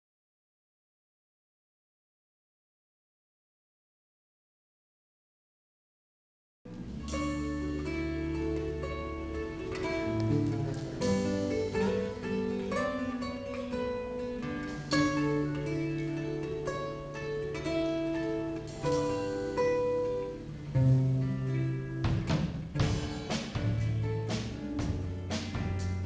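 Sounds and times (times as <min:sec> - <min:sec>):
acoustic guitar picking: 0:06.7 - 0:26.0.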